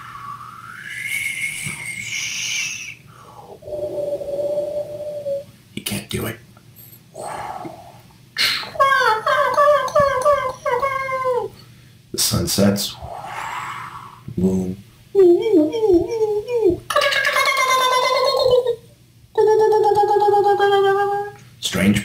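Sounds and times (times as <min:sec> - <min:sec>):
man imitating sound effects: 0:00.7 - 0:03.0, 0:07.2 - 0:11.5, 0:12.9 - 0:21.4.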